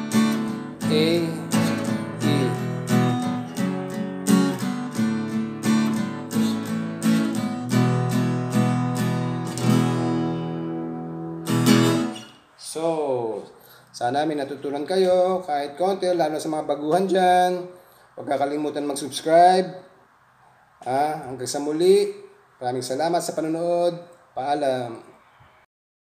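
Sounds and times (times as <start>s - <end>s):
acoustic guitar strumming: 0.0s - 12.5s.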